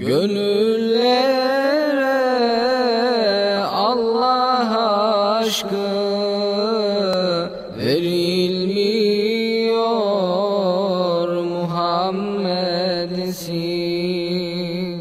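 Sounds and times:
man singing a cappella: 0.0 - 15.0.

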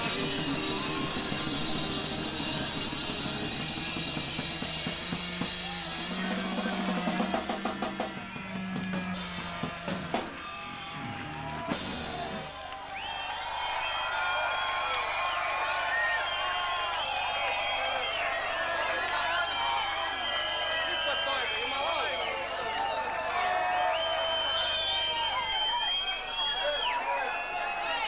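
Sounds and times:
rock band playing live: 0.0 - 10.4
crowd whistling and shouting: 0.0 - 28.0.

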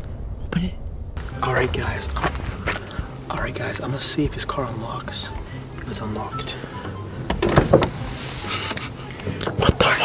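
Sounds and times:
people whispering: 9.2 - 10.0.

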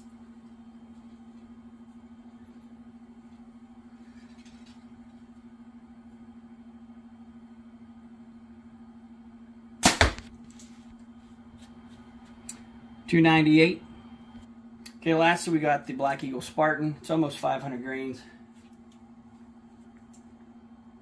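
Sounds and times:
steady low hum: 0.0 - 21.0
bow firing arrow sharp crack: 9.8 - 10.3.

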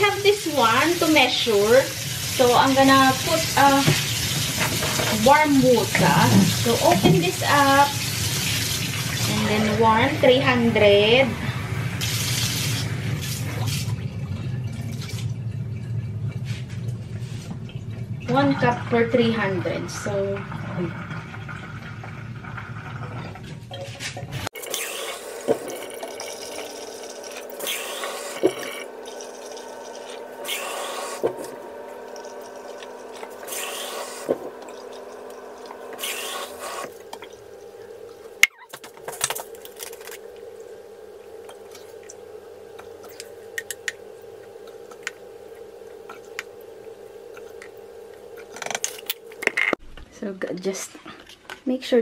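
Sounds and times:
steady low hum: 0.0 - 52.0
liquid pouring splashes: 19.4 - 38.4.

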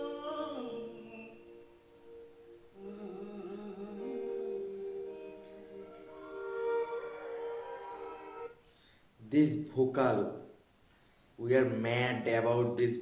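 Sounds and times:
soft instrumental backing: 0.0 - 8.6.

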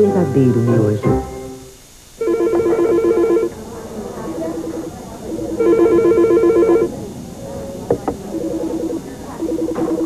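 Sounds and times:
telephone ringing two-tone warble: 2.2 - 3.5, 4.4 - 6.9.

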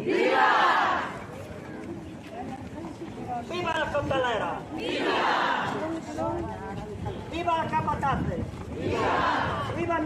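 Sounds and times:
crowd shouting together: 0.0 - 1.2, 4.8 - 5.8, 8.8 - 9.8
crowd murmur: 0.0 - 3.5, 4.4 - 7.4, 8.4 - 9.8.

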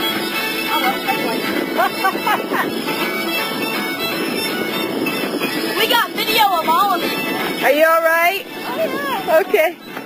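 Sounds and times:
boat motor running: 0.0 - 10.0
wind and water spray rushing: 0.0 - 10.0.

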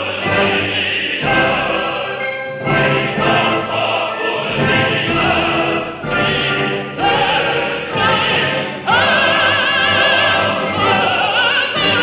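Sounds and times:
operatic tenor singing: 0.0 - 12.0
orchestra and chorus: 0.0 - 12.0.

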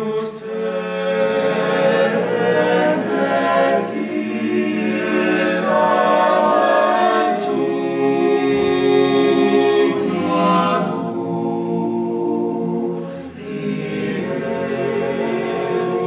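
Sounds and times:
men's choir singing a cappella: 0.0 - 16.0.

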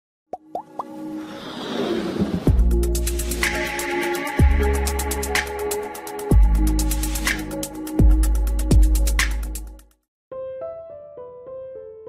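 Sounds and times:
hissing swell: 1.0 - 2.5.

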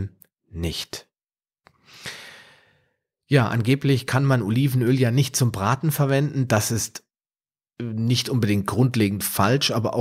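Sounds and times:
man breathing into microphone: 1.7 - 3.0.

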